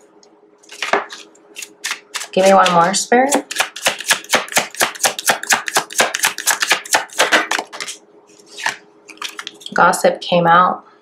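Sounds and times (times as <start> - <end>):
cards being shuffled: 3.5 - 9.8.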